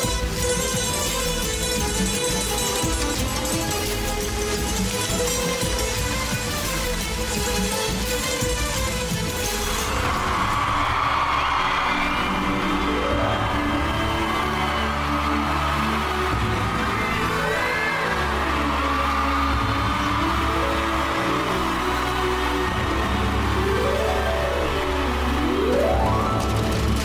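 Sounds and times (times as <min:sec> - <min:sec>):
chords sweeping upward: 0:20.7 - 0:27.0.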